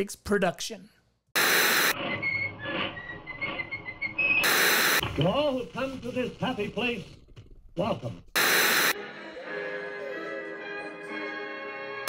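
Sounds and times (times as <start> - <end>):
television static hiss: 8.4 - 9.0.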